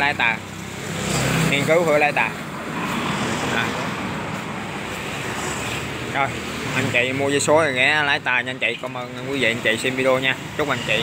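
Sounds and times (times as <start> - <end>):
traffic rush: 0.0 - 11.0
car passing by: 0.7 - 7.2.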